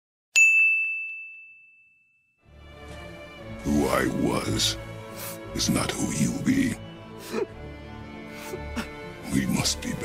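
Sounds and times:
bright ding: 0:00.4 - 0:02.3.

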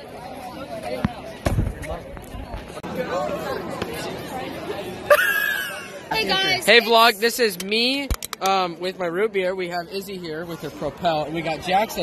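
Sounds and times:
crowd of students chattering: 0:00.0 - 0:12.0.

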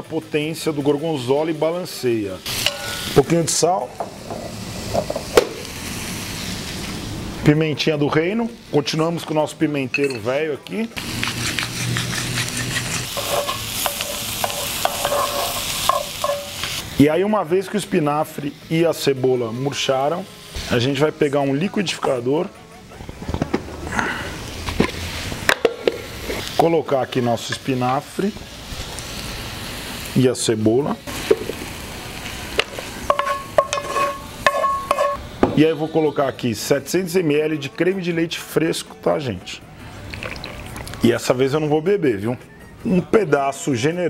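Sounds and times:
vegetables sizzling in a pan: 0:00.0 - 0:22.5, 0:23.2 - 0:37.1.

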